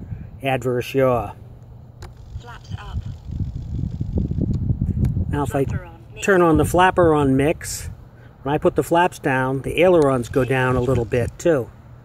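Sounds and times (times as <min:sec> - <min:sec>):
wind buffeting microphone: 0:02.1 - 0:08.0, 0:09.8 - 0:11.5.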